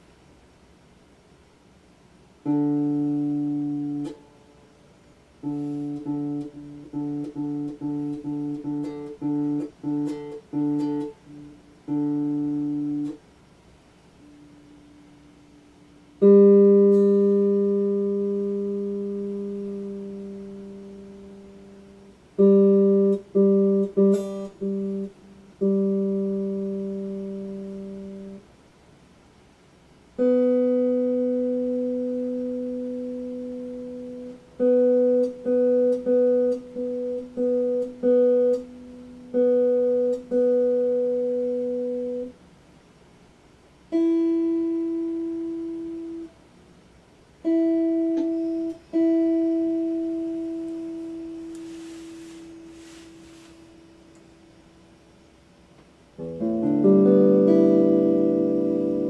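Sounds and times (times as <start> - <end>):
electric guitar strings plucked: 2.4 - 4.4, 5.4 - 13.2, 16.2 - 28.4, 30.2 - 42.3, 47.4 - 51.8, 56.2 - 59.0.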